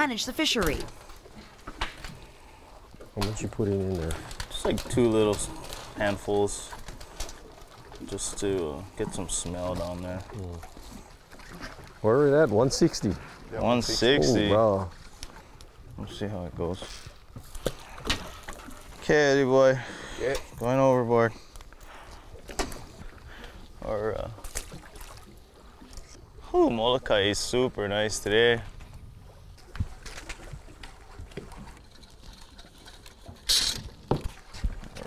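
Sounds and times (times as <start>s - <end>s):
wind and sea hiss: 0.0s - 3.9s, 4.8s - 31.8s
water lapping against boat hull: 0.0s - 35.0s.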